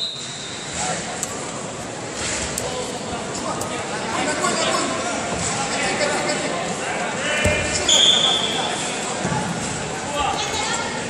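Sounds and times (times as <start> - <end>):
referee's whistle: 0.0 - 0.7, 7.9 - 8.7
voices in a large hall: 0.0 - 11.0.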